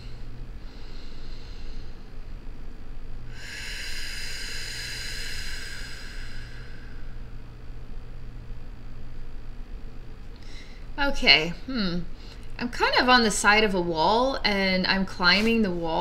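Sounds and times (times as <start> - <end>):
low room hum: 0.0 - 16.0
person breathing out: 3.3 - 7.2.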